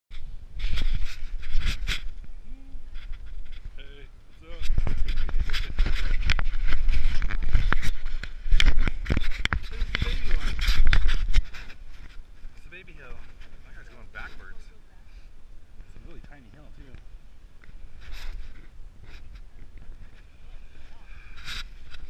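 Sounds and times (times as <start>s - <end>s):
wind buffeting microphone: 0.2s - 13.8s.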